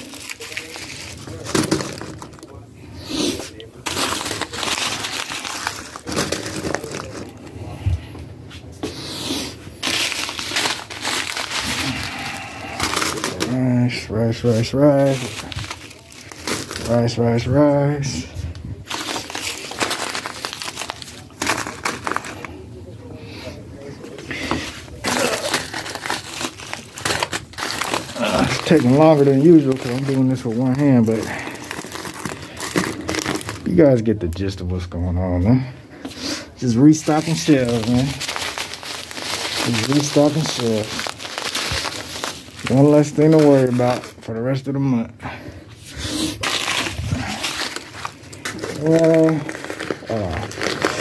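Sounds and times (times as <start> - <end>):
plastic bags crinkling: 0.0 - 7.8, 8.8 - 22.8, 24.0 - 34.6, 36.5 - 44.8, 45.8 - 51.0
plastic packets rustling: 0.0 - 7.8, 8.6 - 22.8, 23.5 - 34.7, 36.0 - 44.8, 45.4 - 51.0.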